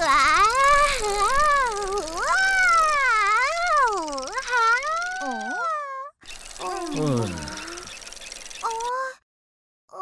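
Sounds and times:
high wordless cartoon crooning: 0:00.0 - 0:07.9.

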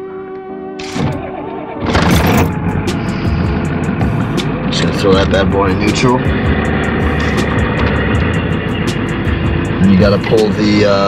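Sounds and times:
background music with held notes: 0:00.0 - 0:11.0
diesel truck engine idling: 0:01.9 - 0:11.0.

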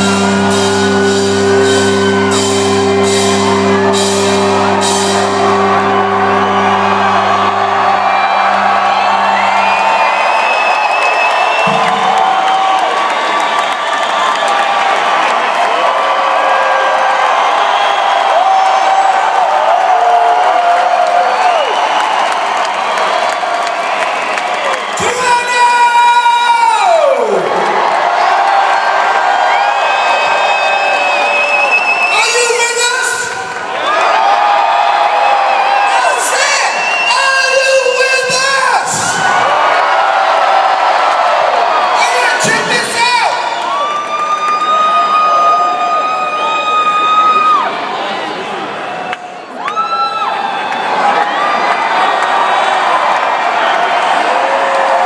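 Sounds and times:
live rock band: 0:00.0 - 0:12.6
high held guitar note: 0:00.0 - 0:12.8
crowd cheering and whooping: 0:00.0 - 0:55.0.

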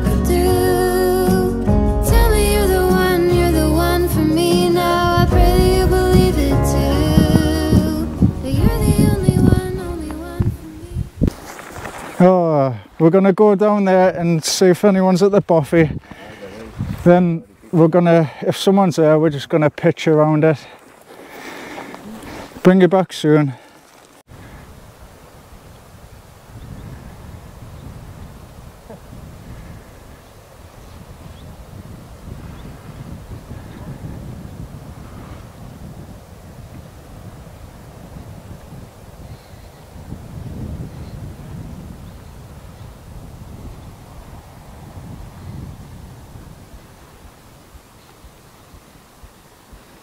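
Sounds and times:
wind buffeting microphone: 0:02.1 - 0:12.2, 0:15.1 - 0:17.7, 0:24.3 - 0:50.0.

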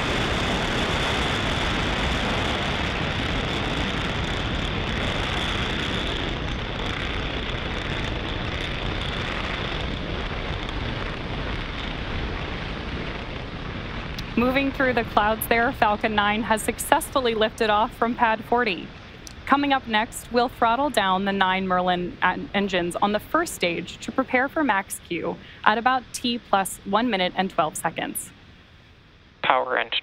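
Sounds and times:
rocket engines rumbling: 0:00.0 - 0:30.0.

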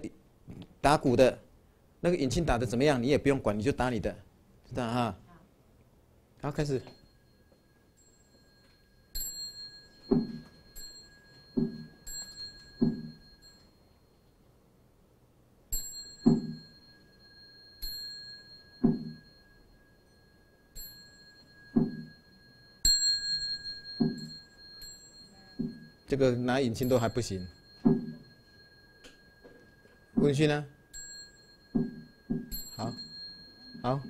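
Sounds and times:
bowl bell ringing: 0:06.5 - 0:14.8, 0:15.6 - 0:34.0
soft low thuds: 0:10.0 - 0:10.6, 0:11.4 - 0:13.4, 0:18.8 - 0:19.3, 0:21.7 - 0:22.2, 0:23.7 - 0:24.6, 0:25.5 - 0:26.2, 0:26.8 - 0:28.6, 0:30.1 - 0:30.4, 0:31.7 - 0:33.1.

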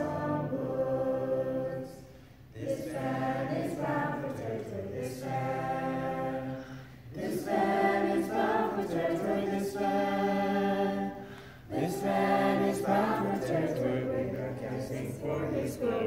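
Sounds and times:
group singing a cappella: 0:00.0 - 0:16.0.

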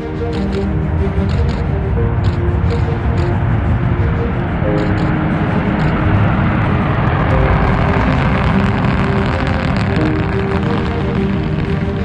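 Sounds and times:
rocket engines rumbling: 0:00.0 - 0:12.0.

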